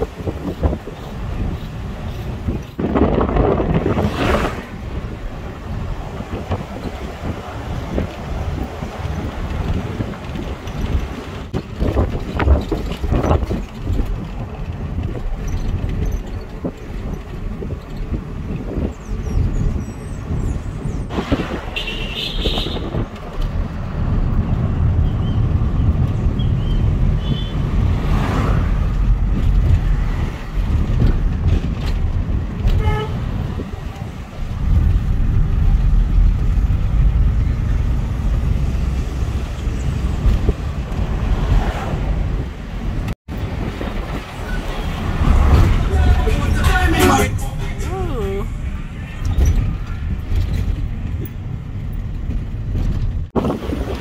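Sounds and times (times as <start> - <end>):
car engine and tyres rumbling: 0.0 - 54.0
car horn toot: 21.8 - 23.0, 32.7 - 33.2, 45.6 - 48.3.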